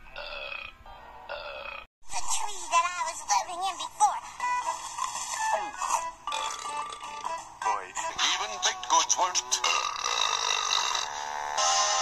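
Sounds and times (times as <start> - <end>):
music: 3.5 - 9.8, 11.1 - 12.0
cartoon burp sound effect: 6.3 - 7.2, 9.6 - 11.8.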